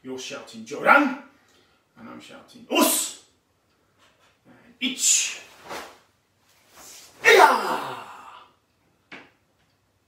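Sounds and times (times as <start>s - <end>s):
man's loud karate shout: 7.2s - 8.5s.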